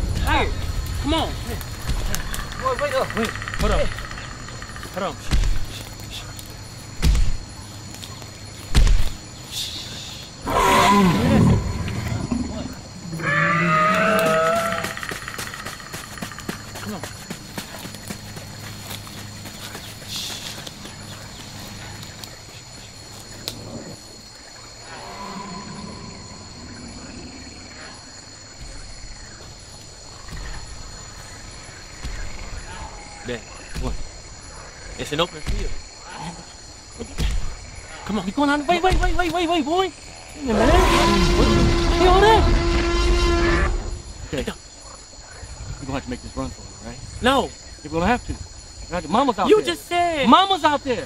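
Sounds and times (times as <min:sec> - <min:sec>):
deep booming thuds: 0:00.0 - 0:02.4, 0:05.2 - 0:05.8, 0:07.0 - 0:07.5, 0:08.7 - 0:09.2.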